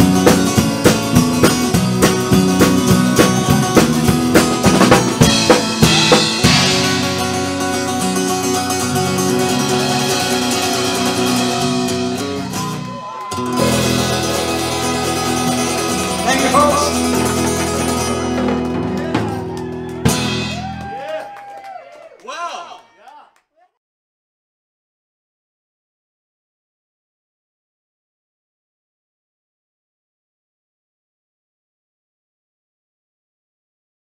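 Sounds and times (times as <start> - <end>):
acoustic guitar strumming: 0.0 - 20.7.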